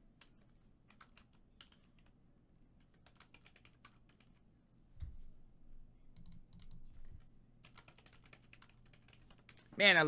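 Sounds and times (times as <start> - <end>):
keyboard typing: 0.2 - 2.2, 2.8 - 4.4, 6.1 - 9.7.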